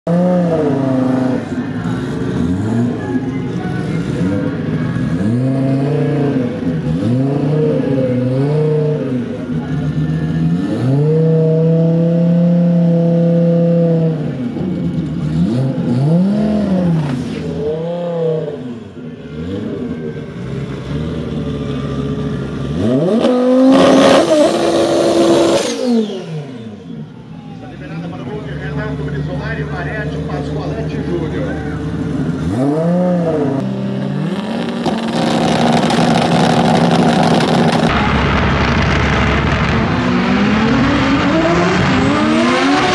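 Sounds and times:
car engine revving: 0:00.1 - 0:42.9.

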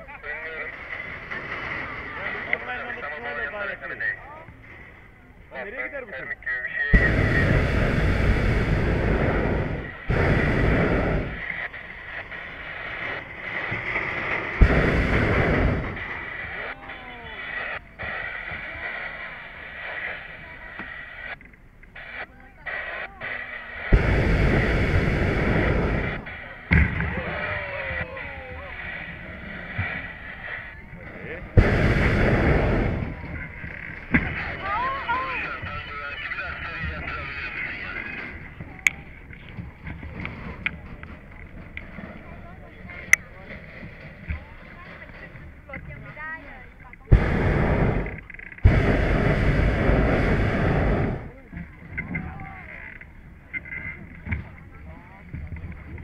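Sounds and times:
propane burner roaring: 0:07.0 - 0:21.4, 0:22.0 - 0:37.7, 0:47.1 - 0:51.6.

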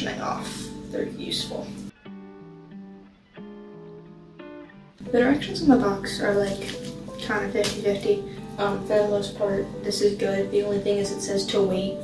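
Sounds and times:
soft guitar chords: 0:00.0 - 0:12.0.

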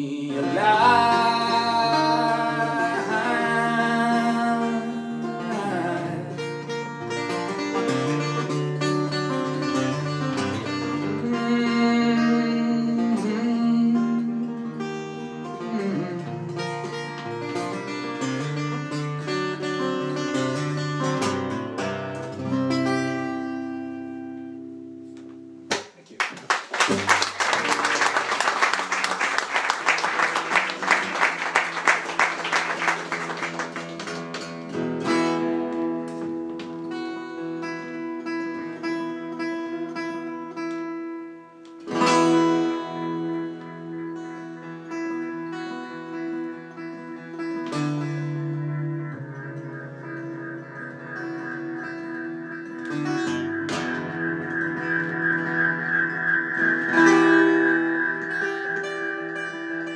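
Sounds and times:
acoustic guitar playing: 0:00.0 - 0:25.7, 0:26.8 - 0:59.9
audience applauding: 0:26.1 - 0:34.6.

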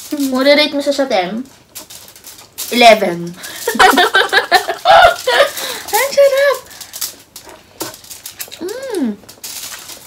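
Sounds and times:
crunchy chewing: 0:06.6 - 0:10.0.

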